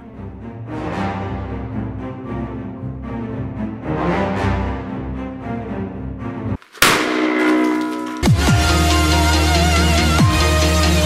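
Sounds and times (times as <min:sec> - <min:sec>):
music: 0:00.0 - 0:06.6, 0:08.2 - 0:11.0
ringing tones: 0:07.0 - 0:09.4.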